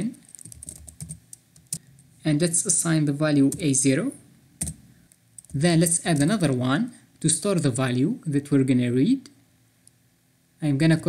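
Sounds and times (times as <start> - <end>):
computer keyboard typing: 0.2 - 1.9, 4.6 - 4.8, 5.4 - 6.4.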